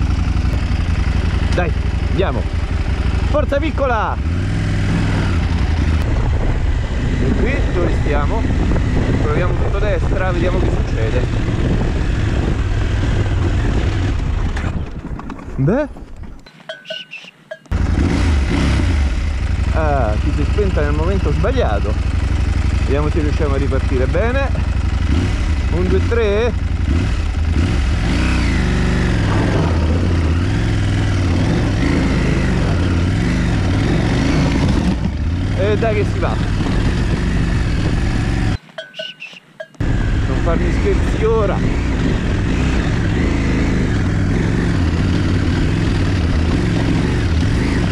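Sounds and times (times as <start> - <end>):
motorcycle engine under load: 0.0 - 47.9
wind noise on microphone: 5.0 - 16.4, 36.2 - 38.6, 39.8 - 45.6.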